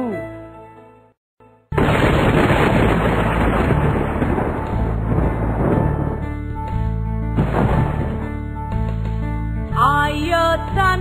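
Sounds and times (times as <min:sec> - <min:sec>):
thunder rumble: 0:01.8 - 0:08.6
children's song backing track: 0:09.7 - 0:11.0.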